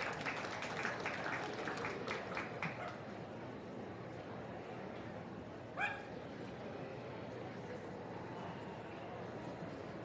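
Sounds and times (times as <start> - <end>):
murmur of large hall: 0.0 - 10.0
small dog yipping: 5.8 - 6.1.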